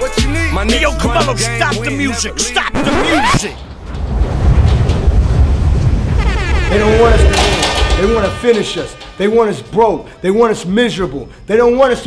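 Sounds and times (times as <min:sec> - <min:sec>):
wind buffeting microphone: 0:03.4 - 0:08.9.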